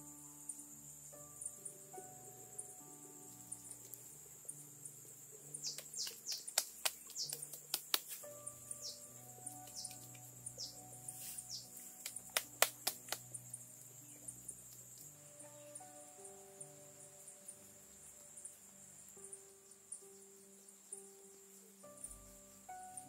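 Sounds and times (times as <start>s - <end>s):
high insect drone: 0.0s - 23.0s
soft music with held notes: 0.0s - 23.0s.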